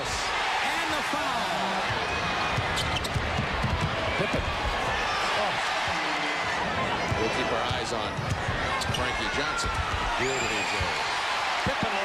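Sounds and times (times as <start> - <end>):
arena crowd noise: 0.0 - 12.0
sneaker squeaks: 2.6 - 3.2.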